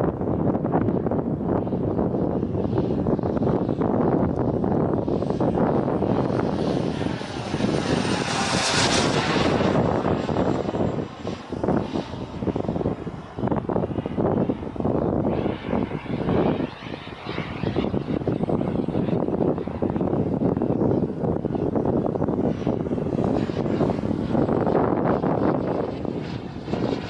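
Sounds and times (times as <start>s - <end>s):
jet aircraft flying past: 0.0s - 27.0s.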